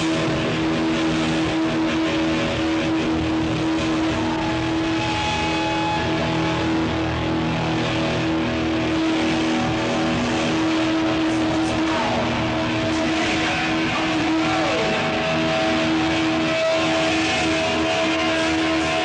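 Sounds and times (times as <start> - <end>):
distorted electric guitar: 0.0 - 19.0.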